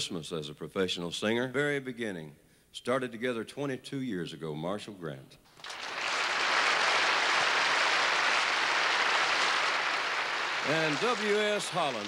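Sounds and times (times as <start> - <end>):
audience applauding: 5.6 - 12.0.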